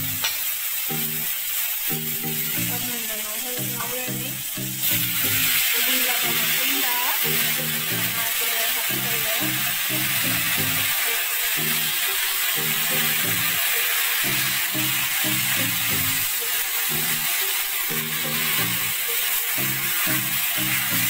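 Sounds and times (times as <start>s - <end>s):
background music with beat: 0.0s - 21.0s
vegetables sizzling in oil: 0.0s - 21.0s.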